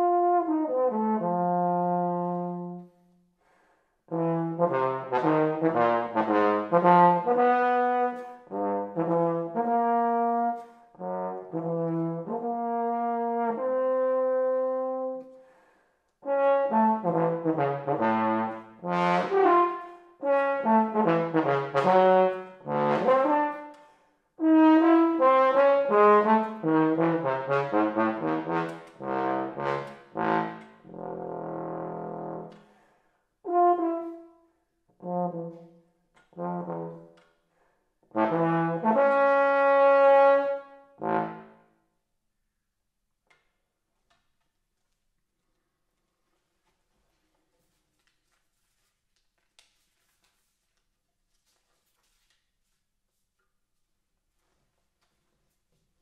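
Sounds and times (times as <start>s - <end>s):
bass trombone solo: 0.0s - 2.8s, 4.1s - 15.2s, 16.2s - 23.7s, 24.4s - 32.6s, 33.4s - 34.3s, 35.0s - 35.7s, 36.3s - 37.1s, 38.1s - 41.6s.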